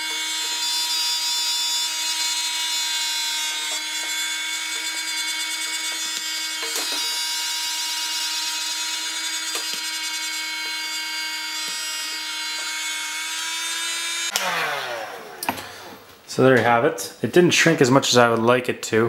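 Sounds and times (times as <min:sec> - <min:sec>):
heat gun whining and blowing: 0:00.0 - 0:16.2.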